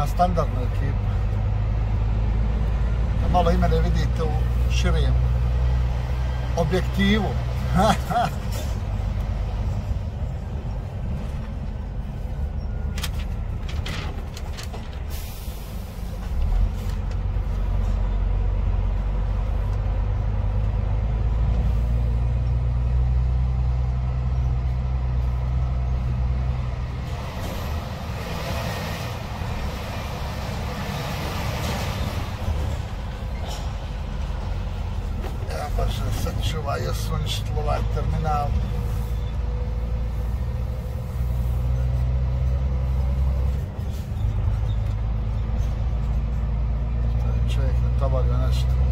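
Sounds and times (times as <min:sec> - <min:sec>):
truck diesel engine rumble: 0:00.0 - 0:48.9.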